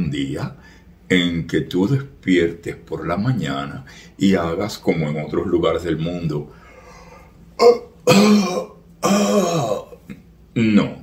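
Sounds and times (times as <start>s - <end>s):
man yawning: 7.6s - 10.0s.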